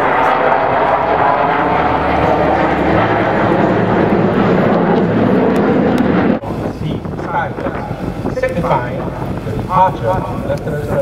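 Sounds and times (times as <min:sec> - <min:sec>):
jet fighters roaring overhead: 0:00.0 - 0:11.0.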